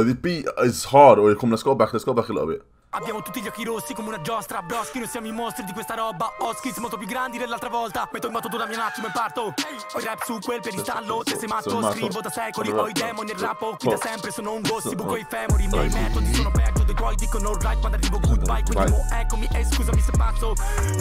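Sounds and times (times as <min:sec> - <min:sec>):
man rapping over a beat: 0:03.0 - 0:21.0
deep bass: 0:15.5 - 0:21.0.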